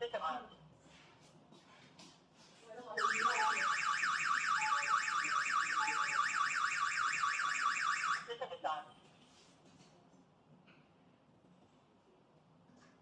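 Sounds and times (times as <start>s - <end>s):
electronic alarm siren wailing: 3.0s - 8.3s.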